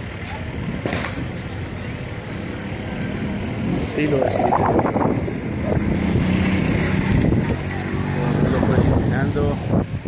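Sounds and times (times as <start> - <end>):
distant fireworks popping: 0.8 - 1.5.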